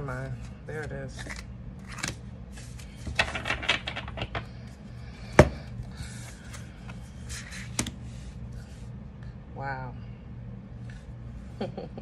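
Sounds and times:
cards sliding: 1.2 - 3.1.

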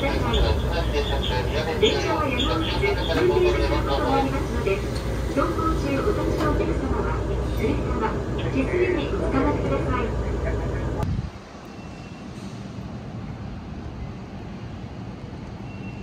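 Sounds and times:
city traffic hum: 0.0 - 16.0
tram rumbling: 0.0 - 16.0.

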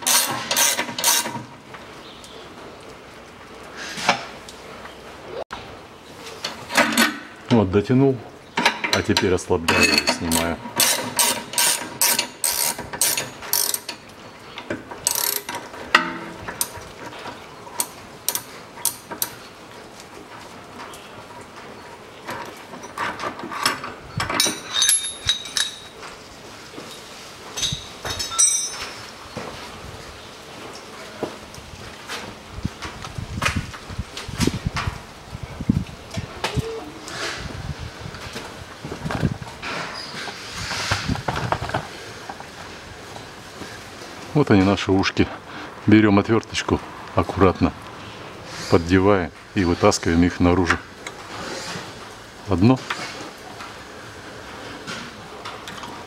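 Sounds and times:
wrench clicking on nut: 10.3 - 14.0, 15.1 - 15.6
metal parts clinking: 22.8 - 26.0, 27.6 - 29.0.

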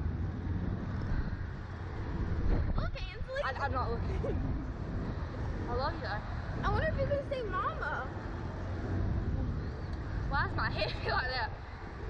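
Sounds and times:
wind rushing over microphone: 0.0 - 12.0.

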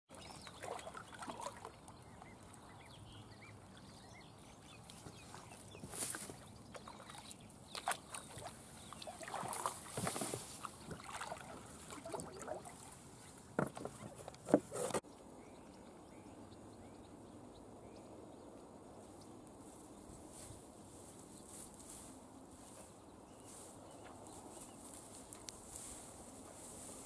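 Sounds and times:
kayak paddle splashing water: 0.1 - 2.4, 6.3 - 15.0
grass rustling against kayak: 3.9 - 15.1, 19.0 - 27.0.

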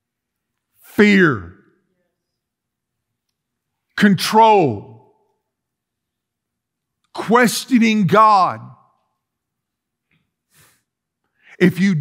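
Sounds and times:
man's voice: 0.8 - 1.6, 4.0 - 5.1, 7.2 - 8.9, 11.5 - 12.0.

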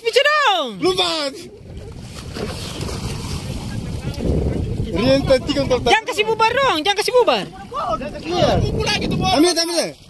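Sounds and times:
seawater sloshing and splashing: 0.4 - 10.0
wind buffeting microphone: 0.8 - 10.0.

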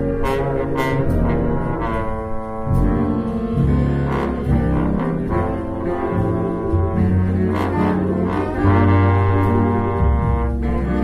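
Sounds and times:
bass line: 0.0 - 11.0
big band accompaniment: 0.0 - 11.0
trombone playing melody: 0.0 - 11.0.

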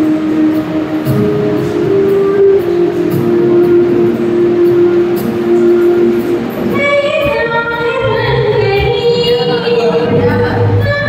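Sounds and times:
instrumental backing music: 0.0 - 11.0
woman singing into microphone: 6.7 - 11.0.

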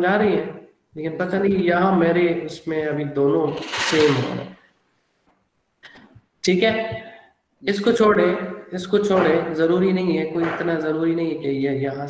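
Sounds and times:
man speaking: 0.0 - 4.5, 6.4 - 12.0.

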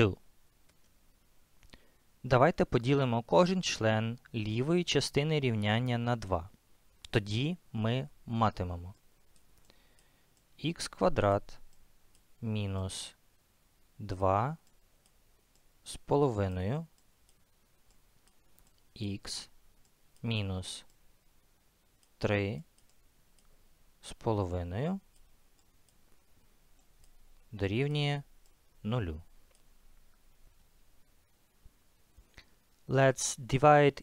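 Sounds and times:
faint clicks: 9.3 - 10.5, 14.6 - 15.7, 16.9 - 18.9, 22.0 - 23.6, 25.1 - 27.5, 29.4 - 30.2
man speaking slowly: 20.2 - 20.9, 27.5 - 29.3.

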